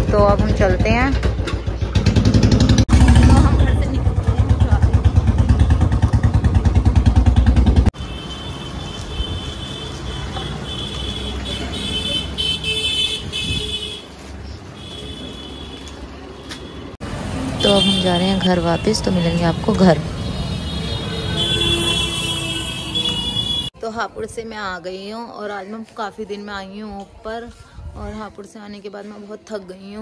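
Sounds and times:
motorcycle engine idling: 0.0s - 7.9s.

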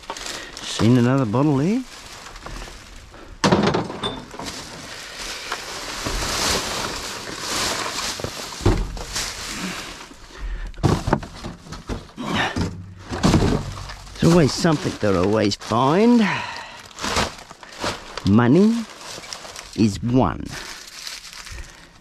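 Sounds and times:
plastic bags rustling: 0.0s - 22.0s
glass bottle clunking: 3.5s - 4.4s.

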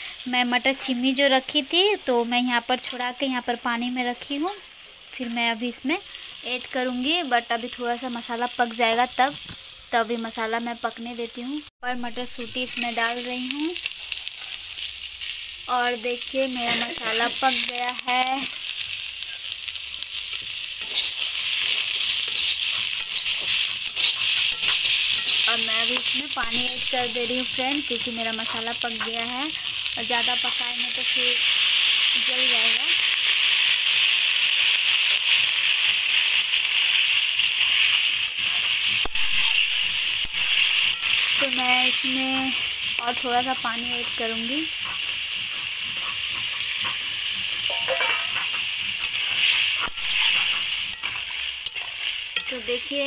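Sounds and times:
vegetables sizzling in oil: 0.0s - 53.0s.

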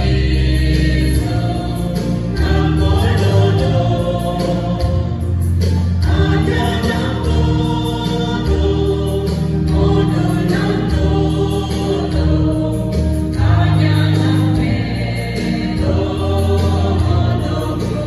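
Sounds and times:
choir singing a hymn: 0.0s - 18.0s.

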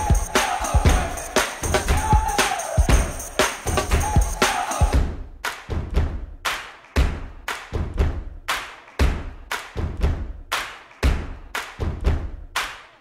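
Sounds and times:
drum hits: 0.0s - 6.3s, 9.0s - 10.4s.

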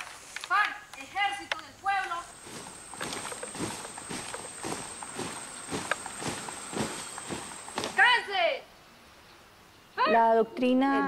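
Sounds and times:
boots marching on leaves: 2.1s - 8.3s.

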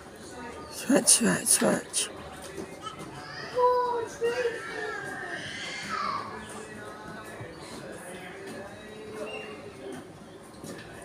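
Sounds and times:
children chattering: 2.7s - 6.5s.

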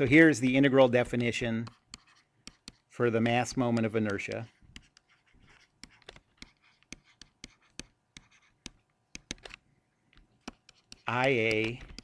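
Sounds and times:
stylus tapping on tablet screen: 0.9s - 12.0s.

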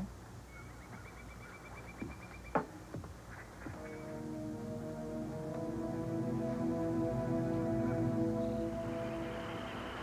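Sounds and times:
steady low hum: 2.7s - 10.0s.

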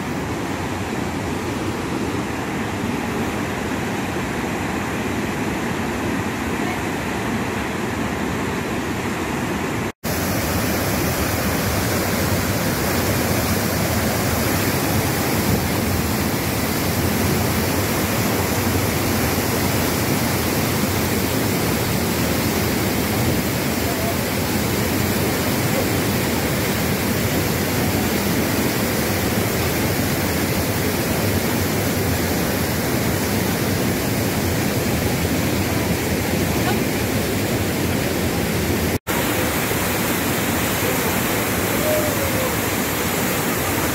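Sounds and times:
waterfall rushing over rocks: 0.0s - 43.9s.

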